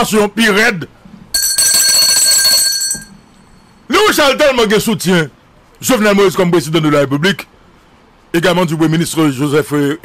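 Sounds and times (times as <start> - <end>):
high metallic bell ringing: 1.4 - 3.8.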